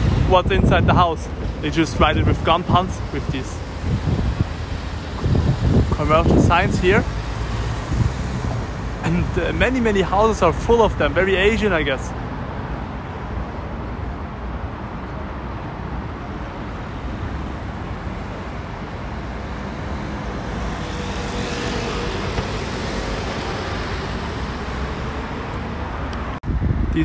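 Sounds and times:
road traffic passing: 0.0 - 27.0
vehicle passing close: 1.5 - 10.1, 19.6 - 26.4.

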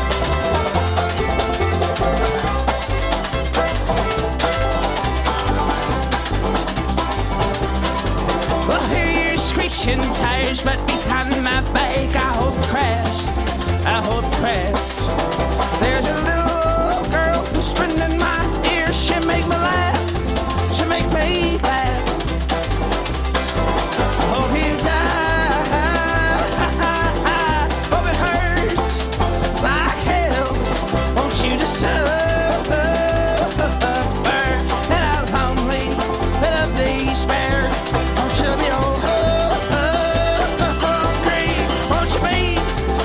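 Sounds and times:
banjo picking: 0.0 - 43.0
bass line: 0.0 - 43.0
sliding melody line: 0.0 - 43.0.

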